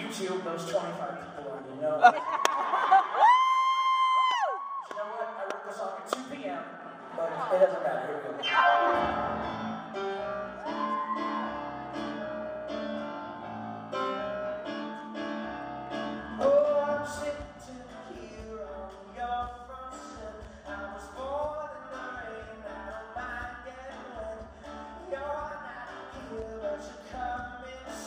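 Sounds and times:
grand piano playing pop ballad: 8.4 - 28.0
man singing: 16.3 - 28.0.

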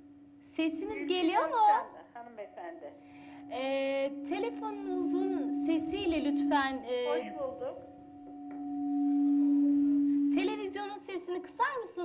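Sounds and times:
audio feedback howl: 0.0 - 2.1, 3.0 - 12.0.

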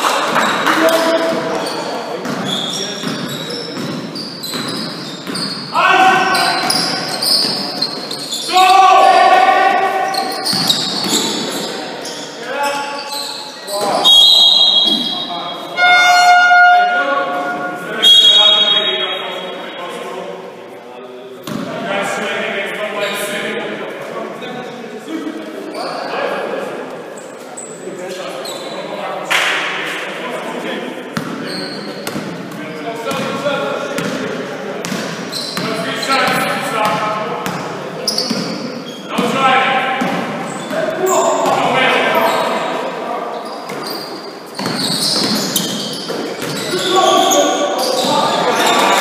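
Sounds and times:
players' voices echoing: 0.0 - 49.0.

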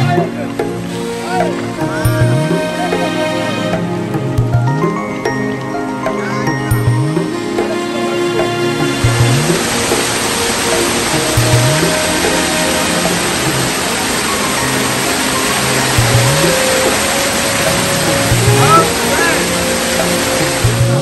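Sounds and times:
background music with bass: 0.0 - 21.0
waterfall rushing: 0.0 - 21.0.

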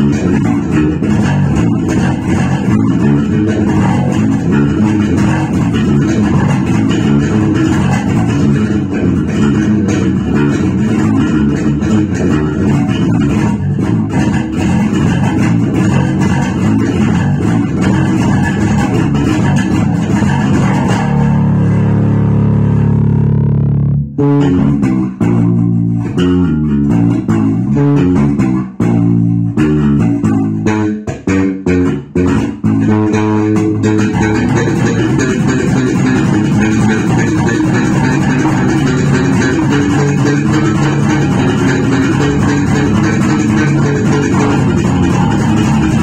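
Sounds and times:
electric bass guitar: 0.0 - 46.0.

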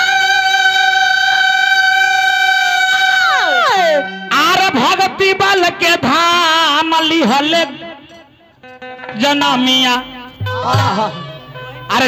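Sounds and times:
man singing a long high note: 0.0 - 8.2, 9.0 - 12.0.

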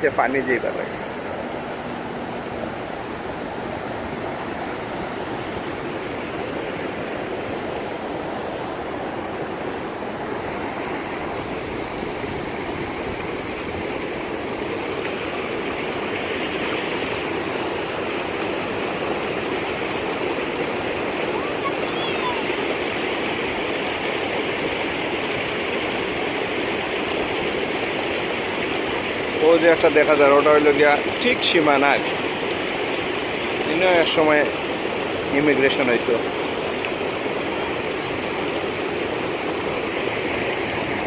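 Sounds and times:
river rushing over rocky shore: 0.0 - 41.0.

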